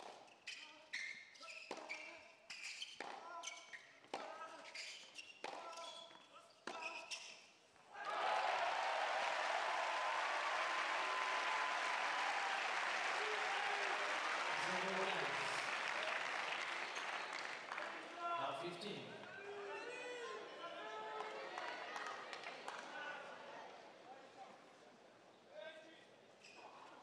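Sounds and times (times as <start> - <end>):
shoes squeaking on court: 0.0 - 7.8
crowd applause: 8.0 - 18.3.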